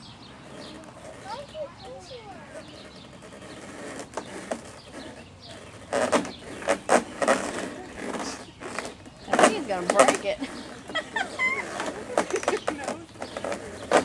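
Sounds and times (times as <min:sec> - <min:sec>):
faint birds chirping: 0:00.0 - 0:14.0.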